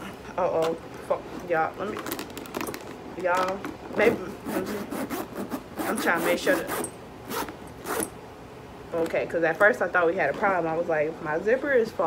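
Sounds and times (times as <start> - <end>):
metal zipper being pulled: 4.1 - 8.2.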